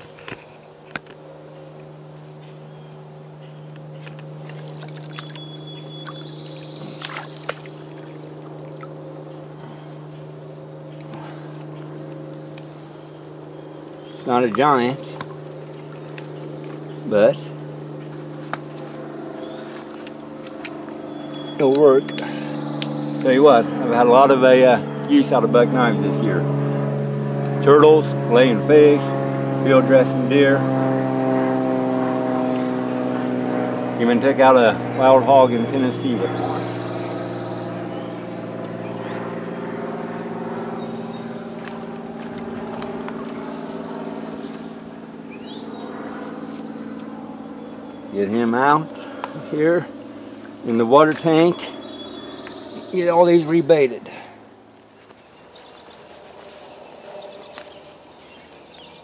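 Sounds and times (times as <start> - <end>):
low drone: 0.0 - 59.0
steady low hum: 0.0 - 59.0
rising bird chirps: 0.6 - 24.2, 36.0 - 59.0.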